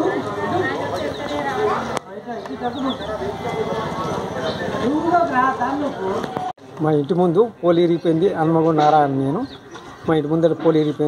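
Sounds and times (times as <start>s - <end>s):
people talking: 0.0s - 9.5s.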